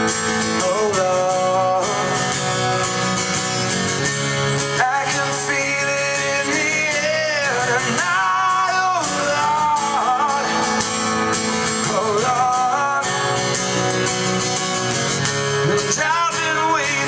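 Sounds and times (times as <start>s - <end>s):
live band with acoustic guitar: 0.0s - 17.0s.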